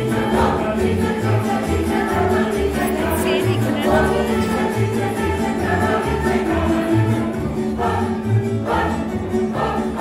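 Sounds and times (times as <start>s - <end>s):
group of voices singing: 0.0s - 10.0s
string orchestra playing chords: 0.0s - 10.0s.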